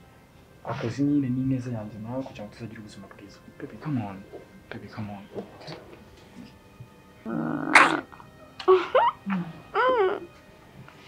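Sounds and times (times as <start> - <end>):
person whimpering: 7.3 - 10.3
person sobbing: 8.6 - 10.3.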